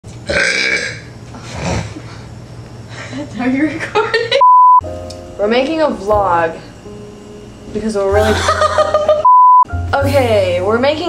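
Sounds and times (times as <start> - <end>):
person burping: 0.3 - 1.9.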